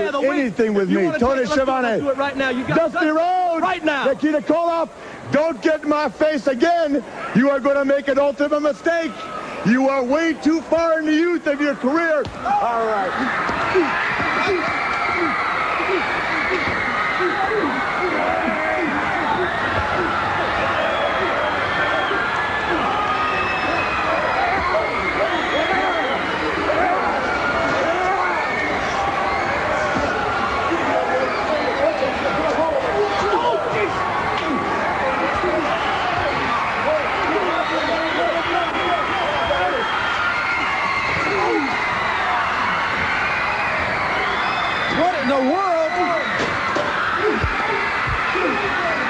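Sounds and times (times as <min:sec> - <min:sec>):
men shouting and yelling: 0:00.0 - 0:43.1, 0:44.8 - 0:49.0
crowd noise: 0:00.0 - 0:49.0
men shouting: 0:12.5 - 0:29.0.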